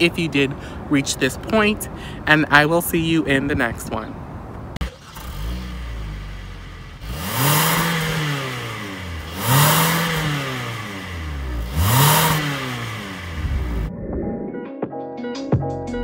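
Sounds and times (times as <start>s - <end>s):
car engine starting and revving: 4.8s - 13.9s.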